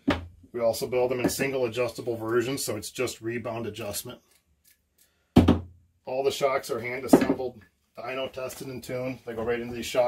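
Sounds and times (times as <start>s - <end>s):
shock absorber knock: 5.4s - 5.8s.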